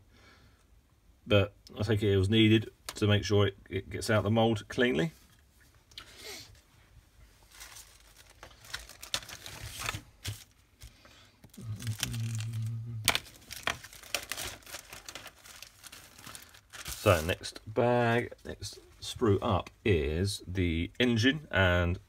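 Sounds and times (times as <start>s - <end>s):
plastic bag crinkling: 7.4s - 17.5s.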